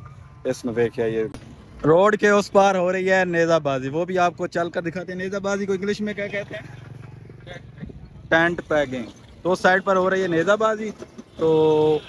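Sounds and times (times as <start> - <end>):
vehicle engine running: 4.2 - 9.9.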